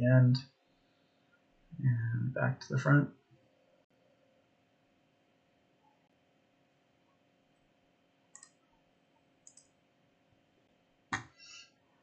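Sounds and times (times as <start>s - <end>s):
computer mouse click: 8.3s - 8.6s, 9.4s - 9.7s.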